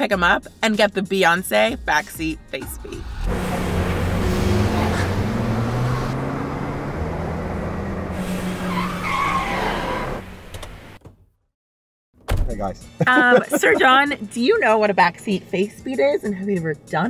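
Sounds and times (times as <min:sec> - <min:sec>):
car engine and road noise humming: 0:02.8 - 0:11.2.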